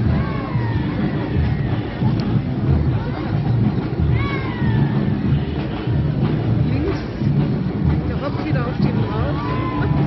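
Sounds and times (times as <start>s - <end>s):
faint crowd voices: 0.0s - 10.0s.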